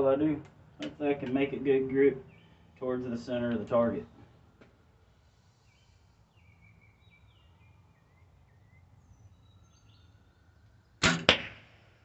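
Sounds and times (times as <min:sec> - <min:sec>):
faint birds chirping: 0:00.0 - 0:11.0.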